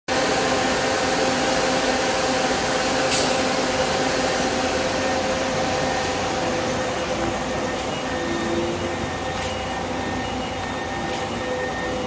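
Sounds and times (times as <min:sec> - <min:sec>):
bus engine running: 0:00.1 - 0:12.0
constant whine: 0:00.1 - 0:12.0.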